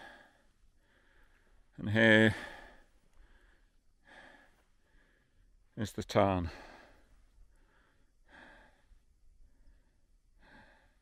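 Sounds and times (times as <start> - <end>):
man breathing slowly: 0.0 - 5.8, 6.5 - 11.0.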